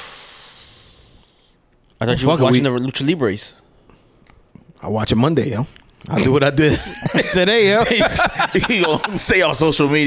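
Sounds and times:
hiss with high whistling tone: 0.0 - 1.5.

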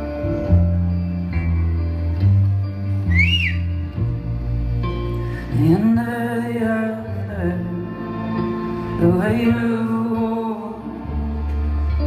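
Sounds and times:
short rising and falling whistle: 3.1 - 3.8.

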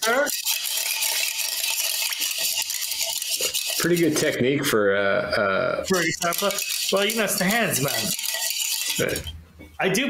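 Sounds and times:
ice rattling in metal tin: 0.0 - 4.4, 5.9 - 9.3.

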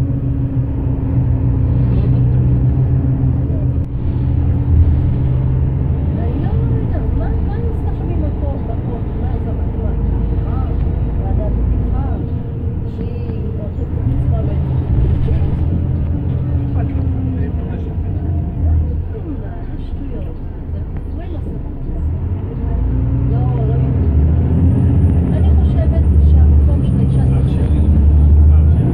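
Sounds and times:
bus engine and road drone: 0.0 - 28.9
faint passenger voices: 1.8 - 5.4, 6.0 - 28.9.

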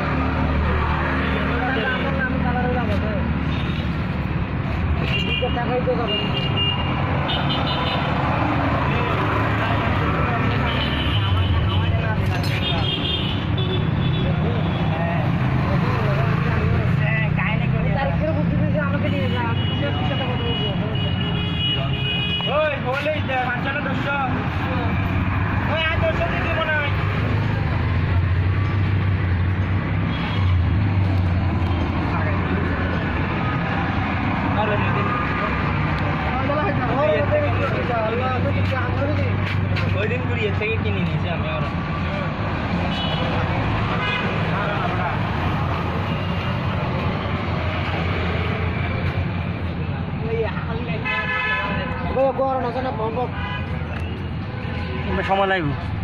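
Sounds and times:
road traffic engine rumble: 0.0 - 56.0.

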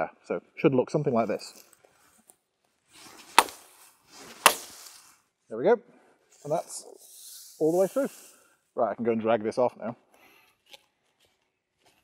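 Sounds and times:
brief rustle: 1.2 - 5.2
axe chopping wood: 3.2 - 4.8.

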